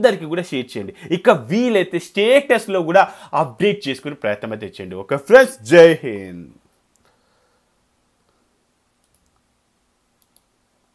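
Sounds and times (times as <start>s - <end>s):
computer mouse clicks: 9.0s - 9.4s, 10.2s - 10.5s.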